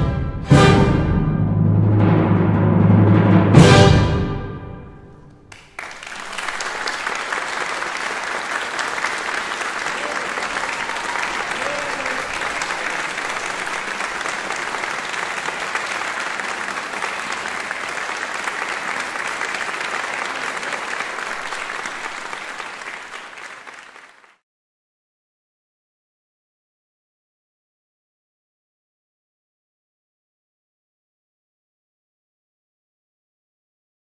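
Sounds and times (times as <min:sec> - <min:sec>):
audience applauding: 0:05.4 - 0:24.4.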